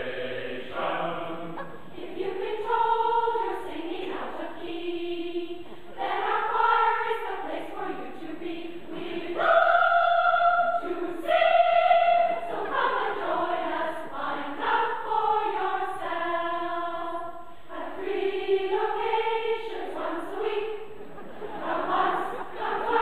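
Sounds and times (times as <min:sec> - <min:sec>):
choir singing held notes: 0:00.0 - 0:23.0.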